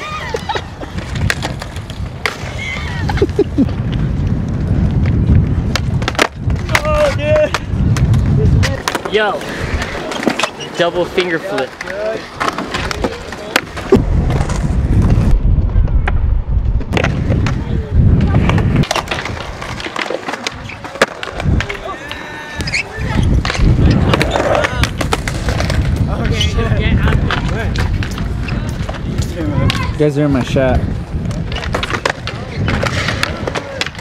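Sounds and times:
skateboard wheels rumbling: 0:00.0 - 0:34.0
skateboard clacking on ground: 0:00.2 - 0:02.5, 0:03.1 - 0:15.2, 0:16.9 - 0:34.0.

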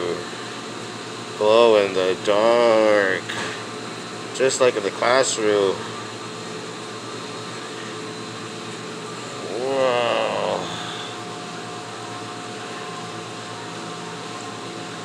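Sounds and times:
hum and hiss of aquarium equipment: 0:00.0 - 0:15.0.

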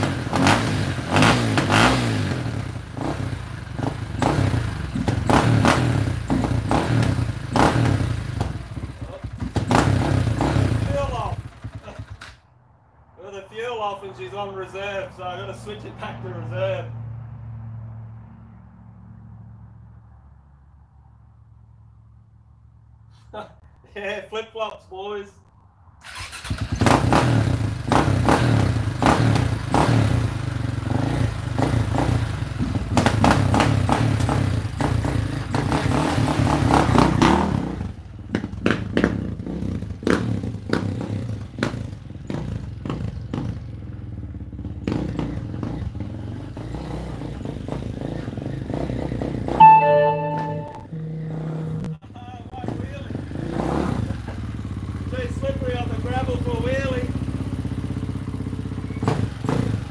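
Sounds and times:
motorcycle engine revving: 0:00.0 - 0:12.4, 0:26.0 - 0:59.9
loud tone: 0:49.6 - 0:51.0.

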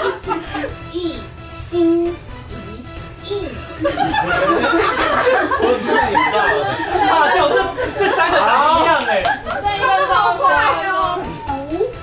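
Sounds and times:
people chattering excitedly: 0:04.2 - 0:11.9.

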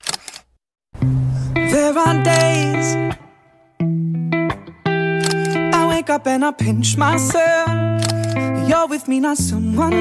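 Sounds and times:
camera shutter click: 0:02.3 - 0:02.6, 0:05.2 - 0:05.8, 0:08.0 - 0:08.5.

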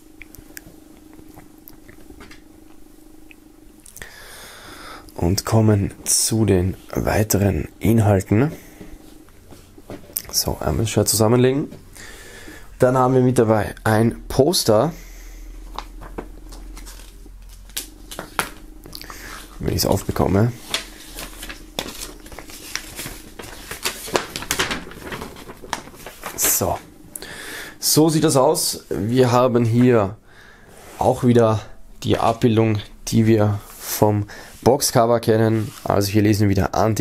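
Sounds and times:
steady low hum: 0:00.0 - 0:37.0
paper crackling: 0:15.7 - 0:27.0
fabric rustling: 0:19.2 - 0:26.9.

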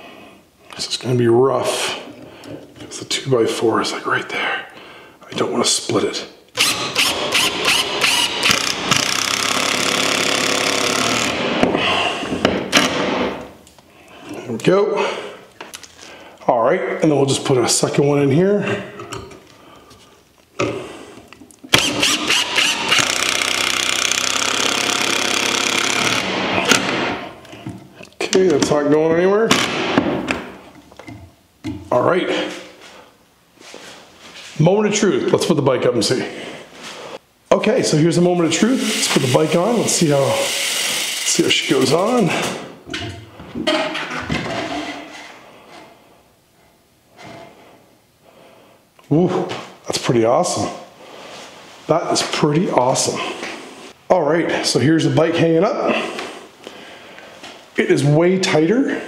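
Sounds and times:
breathing: 0:02.1 - 0:02.7, 0:04.5 - 0:05.2, 0:15.0 - 0:16.4, 0:18.7 - 0:21.3, 0:32.4 - 0:34.0, 0:36.2 - 0:37.2, 0:47.2 - 0:48.9, 0:51.0 - 0:51.6, 0:55.9 - 0:57.6
cordless drill driving screw into wood: 0:06.6 - 0:11.7, 0:21.7 - 0:27.1.

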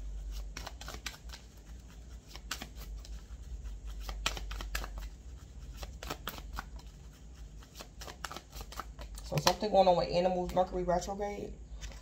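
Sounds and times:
cards being shuffled: 0:00.1 - 0:10.8.

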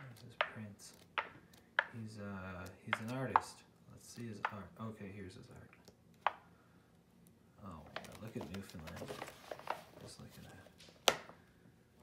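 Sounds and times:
book pages turning: 0:00.0 - 0:01.7, 0:07.8 - 0:11.2.

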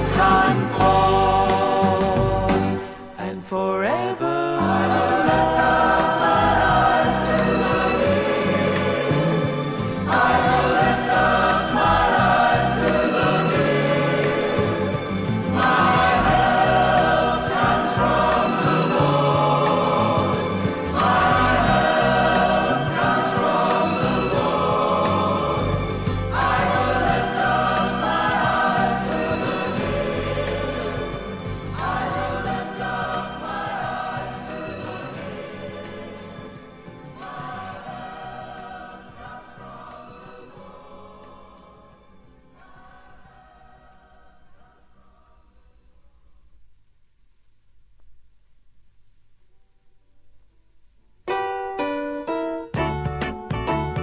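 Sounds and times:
choir singing: 0:00.0 - 0:45.6
instrumental accompaniment: 0:51.3 - 0:54.0.

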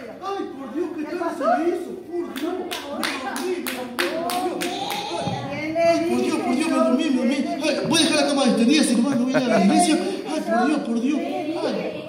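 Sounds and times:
voices in a large hall: 0:00.0 - 0:12.0
steady handclaps: 0:02.4 - 0:05.2.

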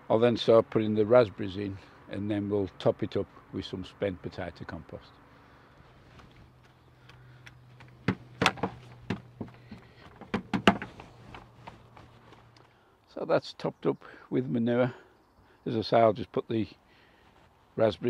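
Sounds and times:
faint steady hum: 0:00.0 - 0:18.0
fork knocking and scraping metal: 0:08.0 - 0:12.0.

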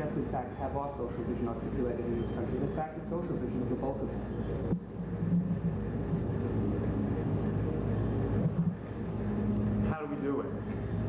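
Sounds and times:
man speaking: 0:00.0 - 0:04.3, 0:09.8 - 0:10.6
low electrical hum: 0:00.0 - 0:11.0.

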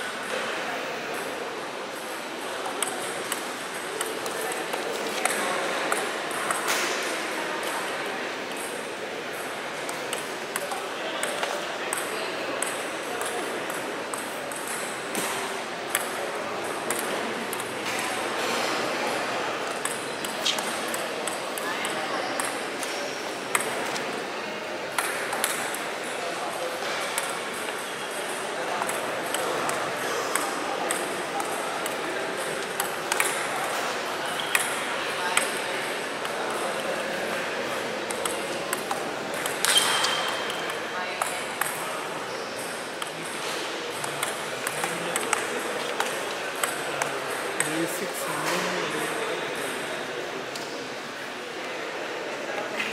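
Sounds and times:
murmur of voices: 0:00.0 - 0:52.9.

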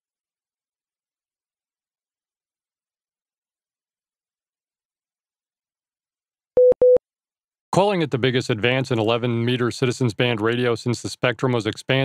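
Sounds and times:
short electronic beeps: 0:06.6 - 0:07.0.

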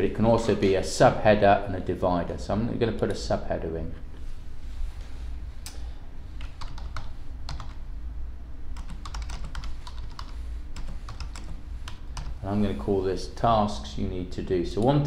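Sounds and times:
steady low hum: 0:00.0 - 0:15.0
typing on computer keyboard: 0:06.4 - 0:07.8, 0:08.8 - 0:12.4.

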